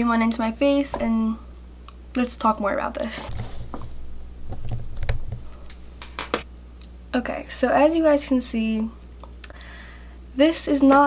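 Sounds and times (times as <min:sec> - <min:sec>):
steady low hum: 0:00.0 - 0:10.8
handling thumps: 0:03.3 - 0:06.5.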